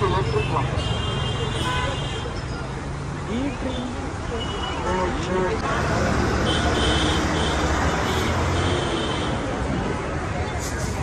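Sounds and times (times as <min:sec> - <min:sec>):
faint voices: 0:00.0 - 0:11.0
road noise: 0:00.0 - 0:11.0.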